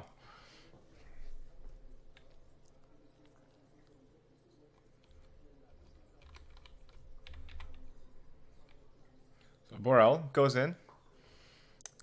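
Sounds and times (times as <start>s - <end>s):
keyboard keys clicking: 6.1s - 7.8s.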